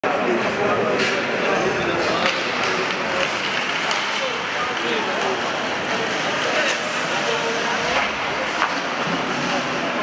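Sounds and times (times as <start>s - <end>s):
crowd hubbub: 0.0s - 10.0s
scattered voices: 0.0s - 10.0s
hockey sticks and puck clacking: 0.9s - 1.4s, 2.0s - 10.0s.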